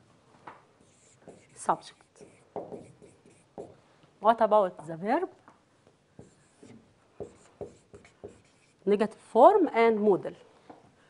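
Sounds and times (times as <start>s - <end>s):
marker writing on a whiteboard: 0.8s - 3.8s, 6.2s - 8.9s.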